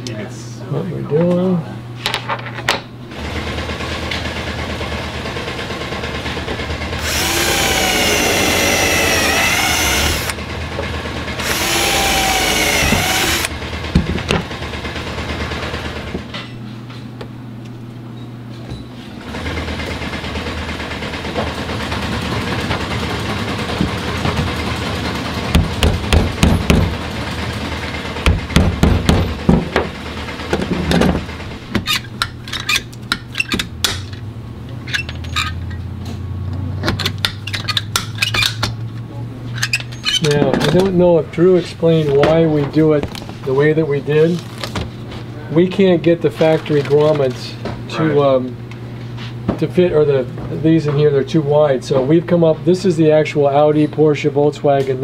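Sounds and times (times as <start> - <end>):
steady low hum: 0.0 - 19.3, 20.4 - 37.4
power drill running: 6.8 - 10.4, 11.3 - 13.6.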